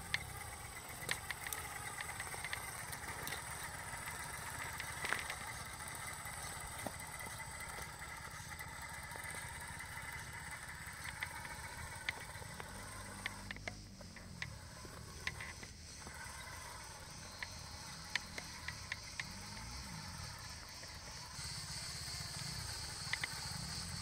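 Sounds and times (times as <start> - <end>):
small clicks and knocks: 0.0 - 15.8, 17.3 - 19.7, 23.0 - 23.5
rc car motor humming and whining: 0.0 - 24.0.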